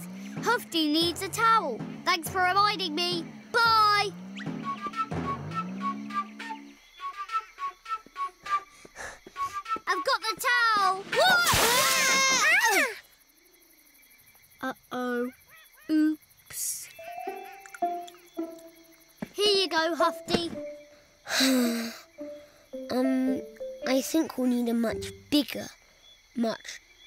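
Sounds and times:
light plucked notes: 0:00.0 - 0:06.6, 0:17.0 - 0:20.9, 0:21.6 - 0:25.4
swooping bouncing tones: 0:00.0 - 0:06.7, 0:17.0 - 0:20.9, 0:22.2 - 0:25.3
cartoon music: 0:00.1 - 0:07.4, 0:17.0 - 0:25.3.

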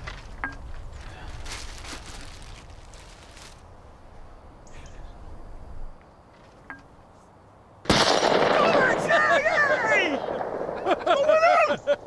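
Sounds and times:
rustling: 0:00.0 - 0:04.2
faint laughter: 0:10.7 - 0:12.0.

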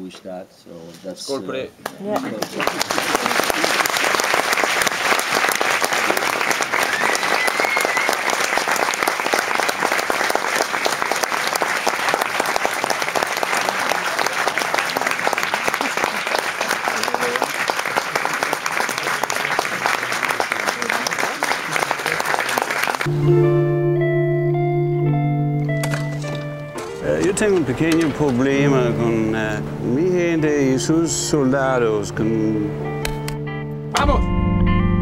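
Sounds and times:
audience applauding: 0:01.8 - 0:23.1.

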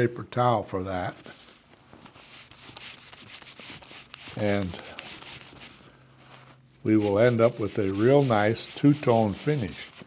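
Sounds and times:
paper towel rubbing leather: 0:01.2 - 0:10.0.

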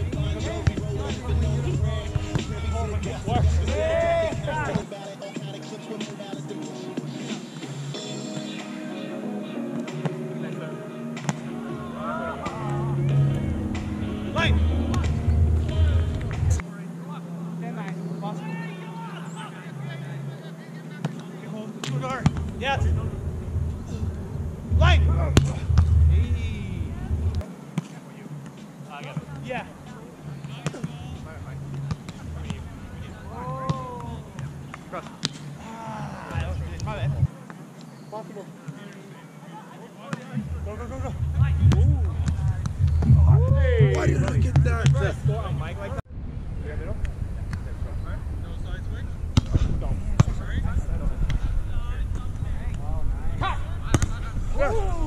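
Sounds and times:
players calling and shouting: 0:00.0 - 0:46.0, 0:47.0 - 0:55.0
wind rumble on microphone: 0:22.6 - 0:27.4, 0:40.7 - 0:55.0.

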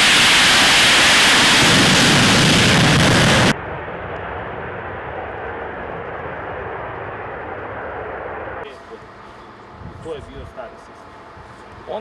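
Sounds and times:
jet engines rushing at takeoff: 0:00.0 - 0:12.0.

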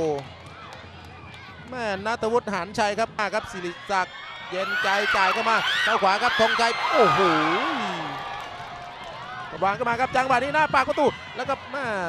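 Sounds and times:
faint stadium ambience: 0:00.0 - 0:12.0
football commentary: 0:00.0 - 0:12.0
man saying wow: 0:06.4 - 0:08.3.

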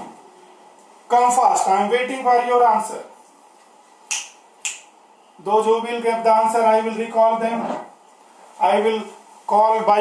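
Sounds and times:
faint room hiss: 0:00.0 - 0:10.0.

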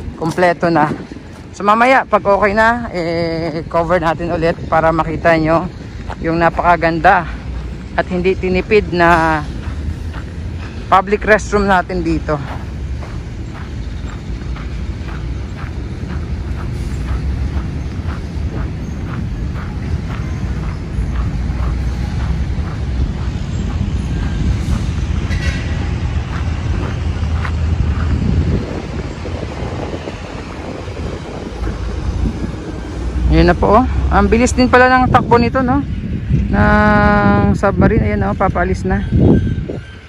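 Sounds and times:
footsteps on sand: 0:00.0 - 0:02.6, 0:03.5 - 0:34.5
distant traffic: 0:00.0 - 0:40.0
wind on microphone: 0:00.0 - 0:40.0.

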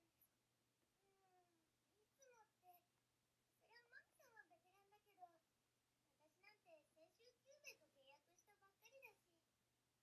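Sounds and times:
faint high-pitched talking: 0:01.0 - 0:02.9, 0:03.6 - 0:05.5, 0:06.2 - 0:09.5.

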